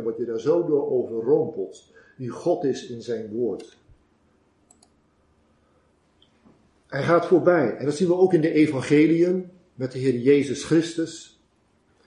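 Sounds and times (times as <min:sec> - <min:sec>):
faint clicks: 0:04.6 - 0:05.0.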